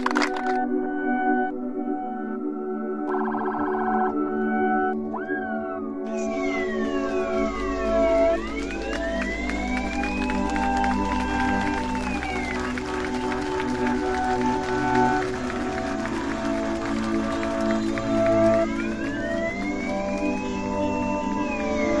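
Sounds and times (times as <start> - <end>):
ambient electronic music: 0.0 - 22.0.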